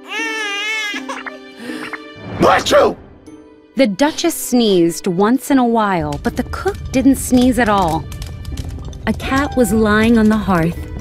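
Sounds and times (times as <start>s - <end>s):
cartoon baby wailing: 0.0s - 1.4s, 9.3s - 10.0s
background music: 0.0s - 11.0s.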